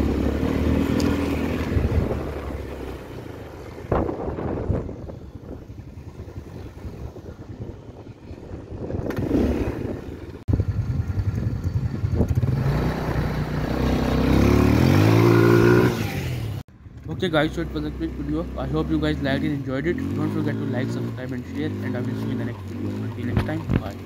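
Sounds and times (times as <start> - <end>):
atv engine running over sand: 0.0 - 16.0, 16.9 - 24.0.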